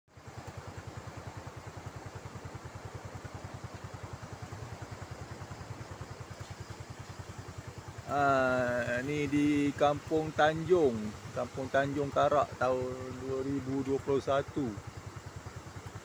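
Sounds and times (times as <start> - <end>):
floodwater rushing: 0.1 - 16.0
motorcycle engine idling: 0.1 - 16.0.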